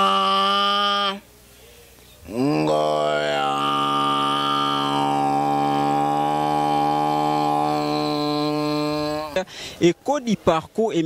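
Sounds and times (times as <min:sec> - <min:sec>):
man singing long note: 0:00.0 - 0:01.2, 0:02.2 - 0:09.4.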